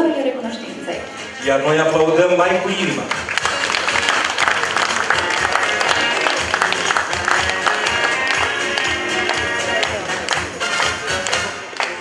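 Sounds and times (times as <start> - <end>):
background music: 0.0 - 12.0
audience applauding: 2.9 - 12.0.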